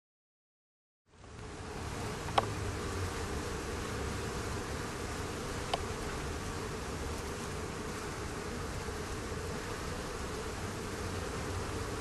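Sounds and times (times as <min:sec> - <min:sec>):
honeybees buzzing: 0:01.1 - 0:12.0.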